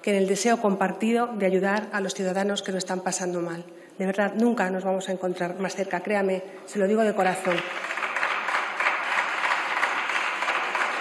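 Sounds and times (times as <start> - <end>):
crowd applauding: 7.5 - 11.0.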